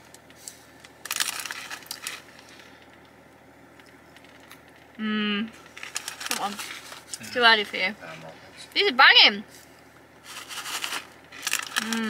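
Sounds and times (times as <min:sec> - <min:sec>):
potato sticks being chewed: 0:10.4 - 0:12.0.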